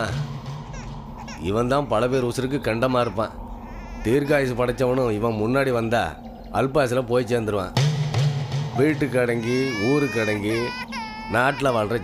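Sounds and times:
infant crying: 0.0s - 2.0s, 2.8s - 5.4s, 9.1s - 12.0s
man talking: 1.3s - 3.4s, 4.0s - 7.8s, 8.8s - 12.0s.

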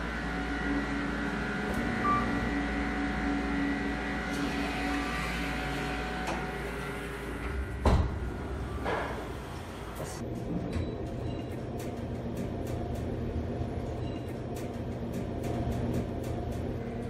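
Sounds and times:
elevator hum: 0.0s - 17.0s
elevator doors sliding open: 1.5s - 11.0s
short beep: 2.0s - 2.5s
elevator door clunk: 6.2s - 11.0s.

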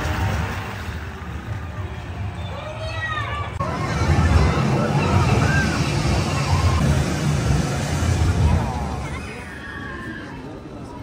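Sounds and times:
people's voices: 0.0s - 11.0s
ride car rumbling along track: 0.0s - 11.0s.

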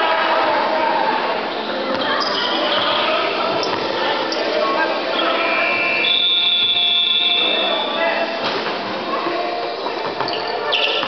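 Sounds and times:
shrill game buzzer: 6.0s - 7.6s.

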